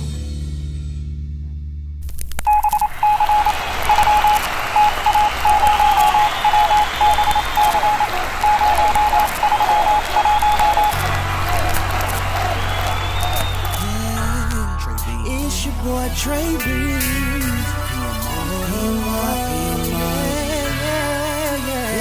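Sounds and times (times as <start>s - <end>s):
high electronic beeps like morse code: 2.4s - 13.8s.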